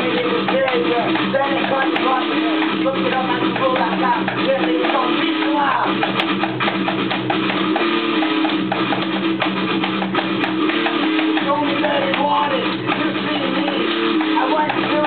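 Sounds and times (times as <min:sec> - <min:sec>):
electric guitar chords: 0:00.0 - 0:15.0
steady drum beat: 0:00.0 - 0:15.0.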